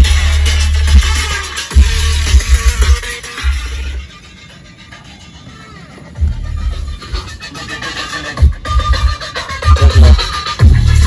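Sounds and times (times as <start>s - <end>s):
electronic dance music with bass: 0.0s - 11.0s.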